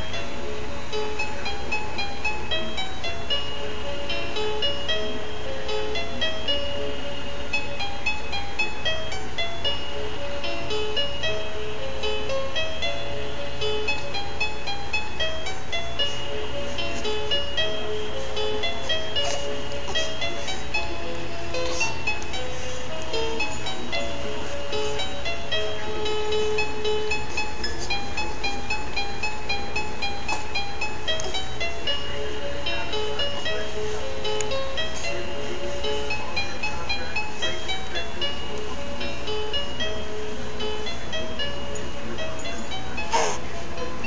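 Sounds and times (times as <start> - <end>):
crib mobile lullaby tune: 0.0 - 44.0
steady low hum: 0.0 - 44.0.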